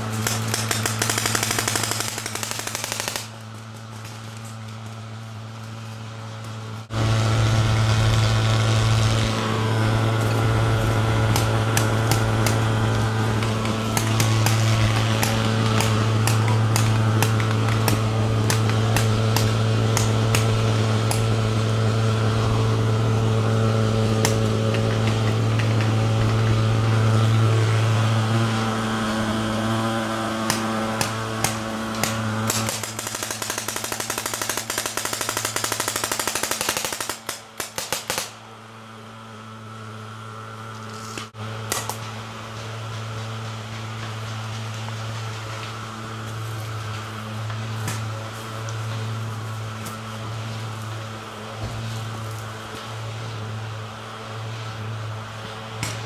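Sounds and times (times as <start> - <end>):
paintball markers firing: 0.0 - 3.4, 11.2 - 21.3, 30.4 - 38.4
steady low hum: 0.0 - 56.0.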